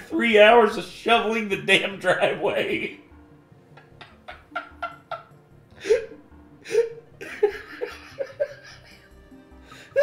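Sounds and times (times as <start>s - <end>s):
man's stifled breathy laughter: 3.8s - 9.1s.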